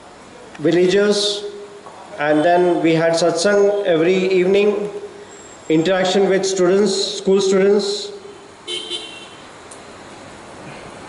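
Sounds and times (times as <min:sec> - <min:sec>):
faint background hiss: 0:00.0 - 0:11.0
car horn toot: 0:08.3 - 0:09.5.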